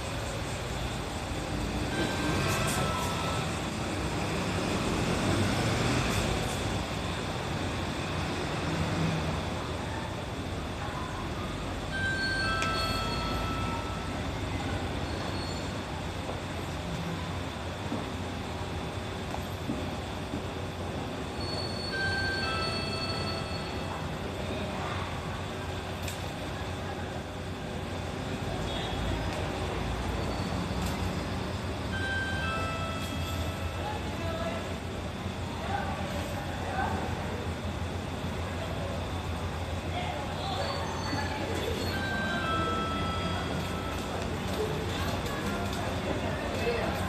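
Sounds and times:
diesel bus idling: 0:00.0 - 0:47.0.

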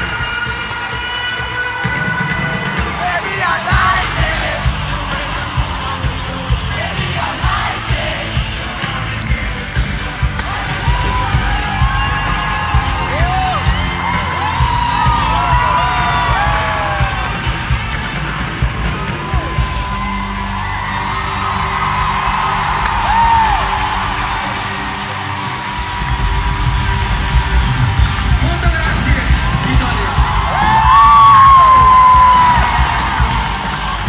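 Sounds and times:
fans yelling and whooping: 0:00.0 - 0:34.0
loud live pop music: 0:00.0 - 0:34.0
pounding bass beat: 0:01.9 - 0:34.0.

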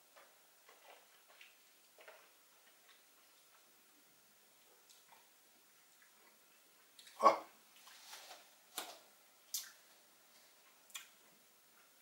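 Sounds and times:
lip and tongue smacks: 0:09.5 - 0:09.8.

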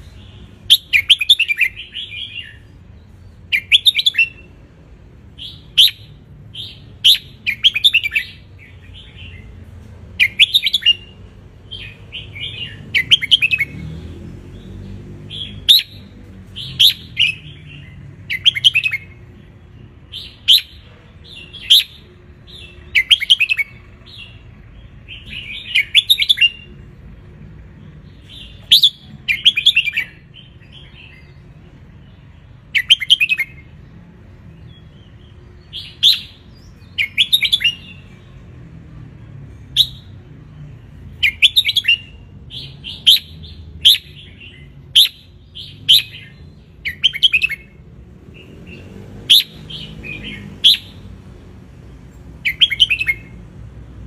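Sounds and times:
bird chirping song: 0:00.0 - 0:54.0.

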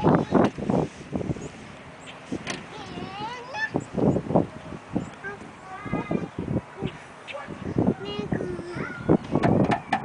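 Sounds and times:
toddler babbling: 0:02.7 - 0:03.8, 0:05.2 - 0:09.2.

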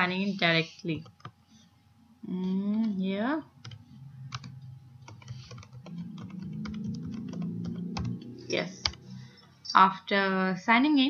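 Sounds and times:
low background hum: 0:00.0 - 0:11.0
keyboard typing: 0:00.9 - 0:01.3, 0:03.6 - 0:09.5.

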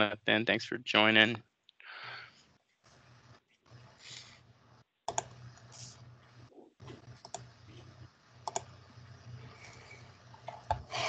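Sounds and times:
low steady hum: 0:02.0 - 0:11.0
computer keyboard clicking: 0:05.1 - 0:05.4, 0:08.4 - 0:08.8.

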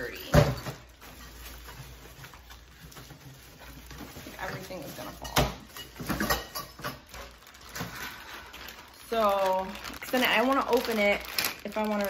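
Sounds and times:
boxes rustling and knocking: 0:00.1 - 0:08.0.

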